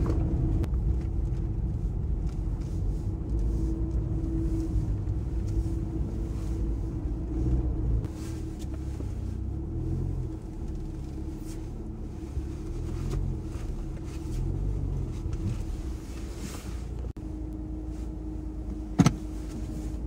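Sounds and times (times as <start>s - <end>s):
car engine and tyre rumble: 0.0s - 20.0s.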